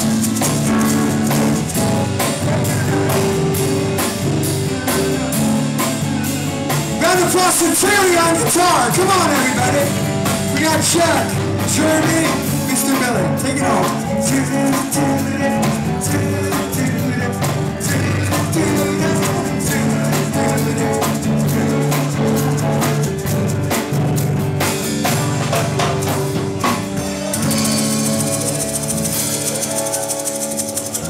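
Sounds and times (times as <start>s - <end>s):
live rock band playing: 0.0s - 31.0s.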